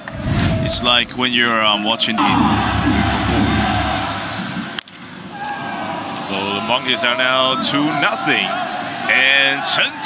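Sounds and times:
stadium music: 0:00.0 - 0:07.1
crowd cheering: 0:00.0 - 0:10.0.

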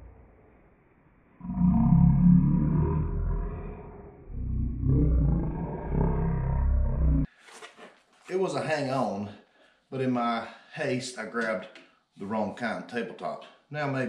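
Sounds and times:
slowed deep voice growl: 0:01.4 - 0:07.3.

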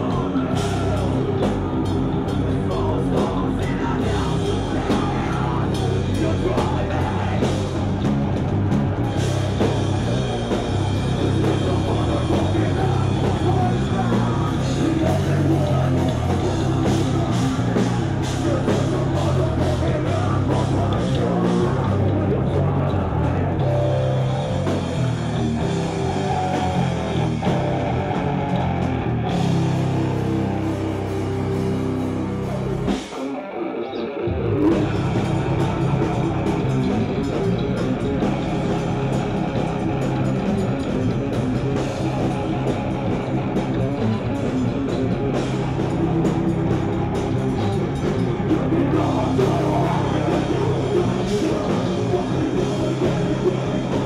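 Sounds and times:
heavy metal band playing: 0:00.0 - 0:54.0.

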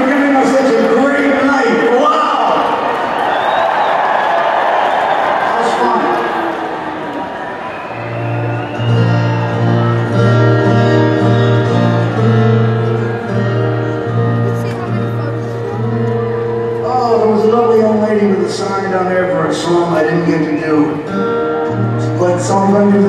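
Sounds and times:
stadium crowd noise: 0:00.0 - 0:23.0
amplified acoustic guitar strumming: 0:08.0 - 0:19.1, 0:20.9 - 0:23.0.

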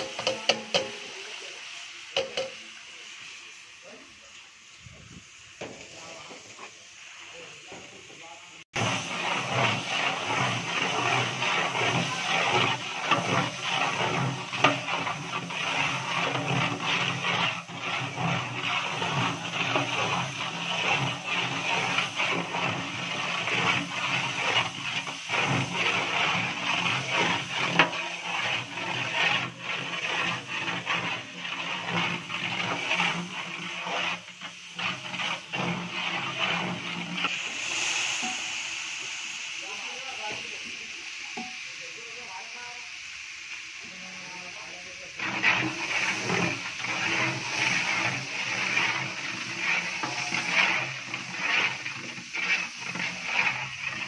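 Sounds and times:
ladle clicking against metal pot: 0:02.2 - 0:02.6
water splashing in pot: 0:44.8 - 0:54.0.

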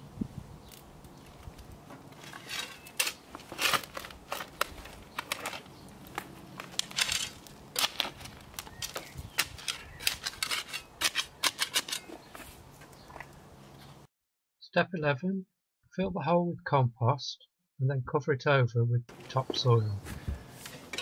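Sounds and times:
spade digging stony soil: 0:02.0 - 0:12.8.

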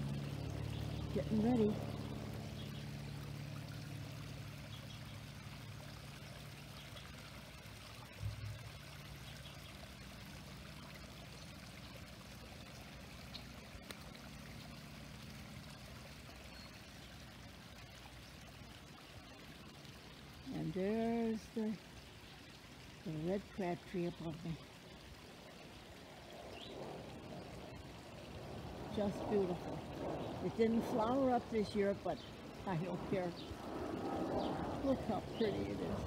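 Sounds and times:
water trickling: 0:00.0 - 0:36.0
faint low drone: 0:08.0 - 0:09.5.

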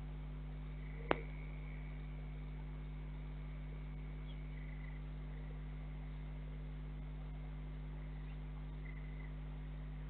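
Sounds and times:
faint high whine: 0:00.0 - 0:10.0
low steady hum: 0:00.0 - 0:10.0
faint chirp: 0:00.7 - 0:09.7.

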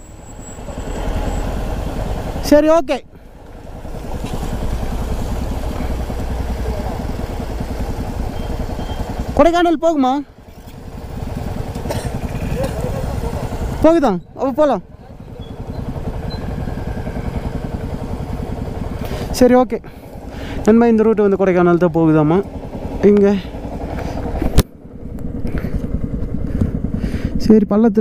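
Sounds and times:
motorcycle engine rumbling: 0:00.0 - 0:27.6.

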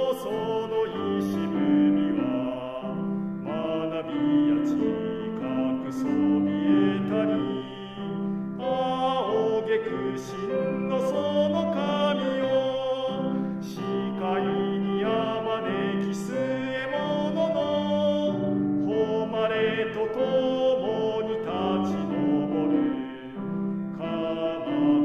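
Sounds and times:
man singing operatically: 0:00.0 - 0:25.0
piano accompaniment: 0:00.0 - 0:25.0.

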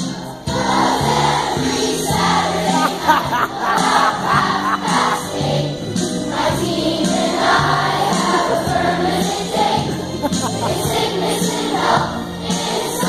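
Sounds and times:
children's choir singing: 0:00.0 - 0:13.0
instrumental accompaniment: 0:00.3 - 0:13.0.

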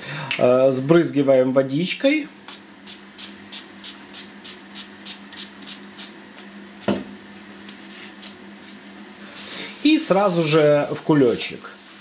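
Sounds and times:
spray bottle spritzing: 0:02.5 - 0:06.2.

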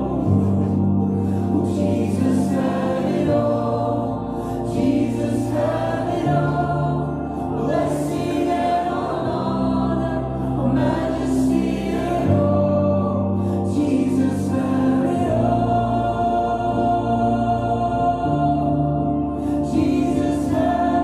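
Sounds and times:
voices singing: 0:00.0 - 0:21.0.

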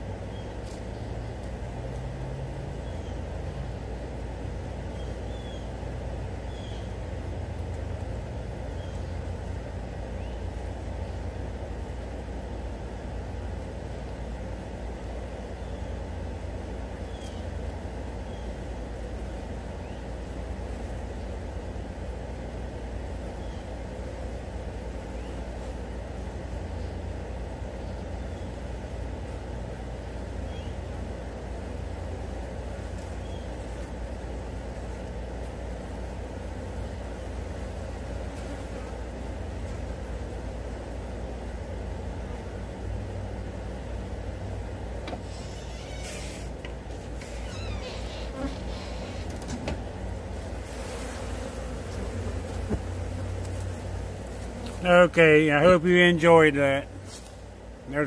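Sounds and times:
flies buzzing: 0:00.0 - 0:58.0.

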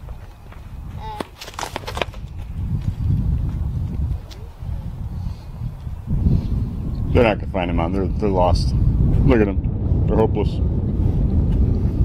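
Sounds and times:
footsteps and camera handling thuds: 0:00.0 - 0:04.5.

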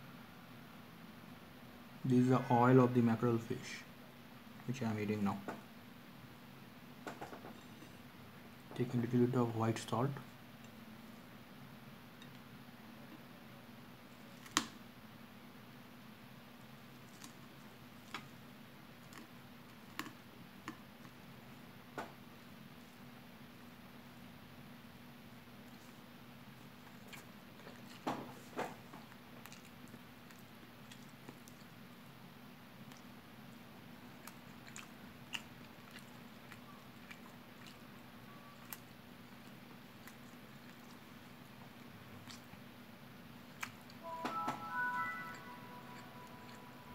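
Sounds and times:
low steady hum: 0:00.0 - 0:46.9
chewing and mouth smacking: 0:19.0 - 0:21.2, 0:26.6 - 0:28.1, 0:28.8 - 0:31.8, 0:32.8 - 0:42.7, 0:43.4 - 0:44.0.

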